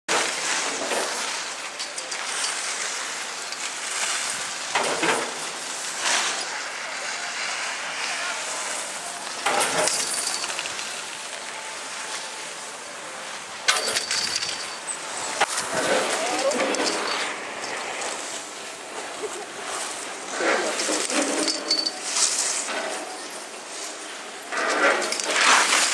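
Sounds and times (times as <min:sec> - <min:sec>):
skis scraping over snow: 0:00.1 - 0:25.9
indistinct voices: 0:15.6 - 0:18.1.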